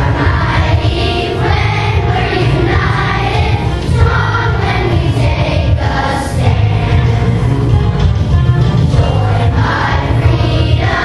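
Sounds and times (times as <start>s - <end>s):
children's choir singing in unison: 0.0s - 7.8s, 8.8s - 11.0s.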